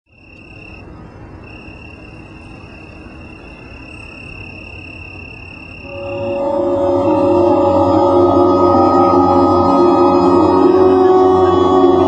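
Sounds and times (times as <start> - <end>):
cricket trilling: 0.1 - 7.2.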